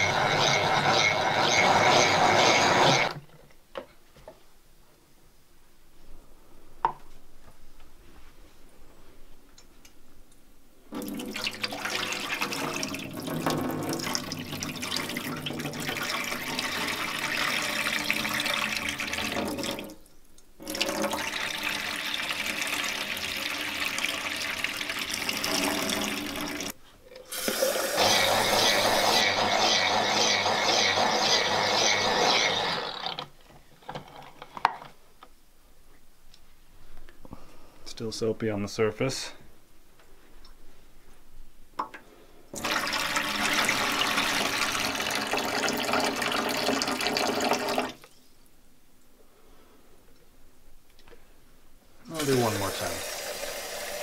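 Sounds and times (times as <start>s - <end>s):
water pouring into metal sink: 11.0s - 20.0s, 20.6s - 29.0s, 42.6s - 48.1s, 52.1s - 54.0s.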